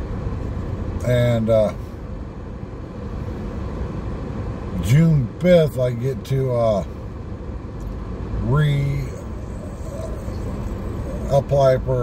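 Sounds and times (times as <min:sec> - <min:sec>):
car engine and tyre rumble: 0:00.0 - 0:12.0
man's voice: 0:04.8 - 0:06.9, 0:08.4 - 0:12.0.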